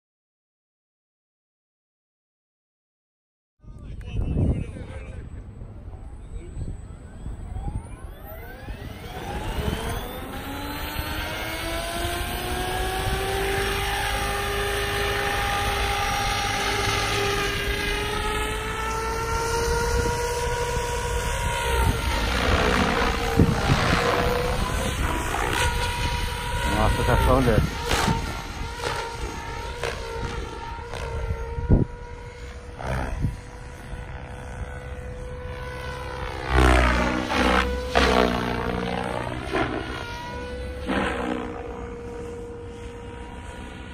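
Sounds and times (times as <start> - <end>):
rc helicopter rotor whine: 3.9 - 43.9.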